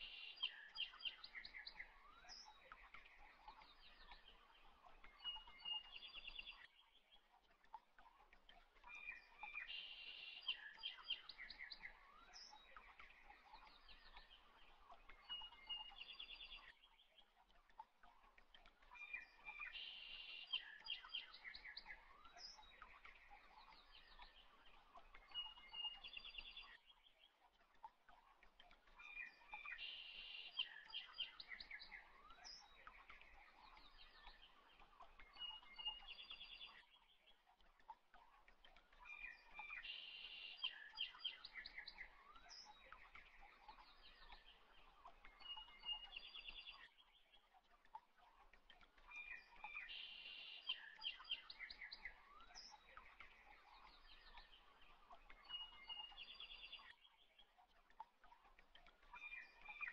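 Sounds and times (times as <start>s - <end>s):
small birds chirping: 0.0s - 59.9s.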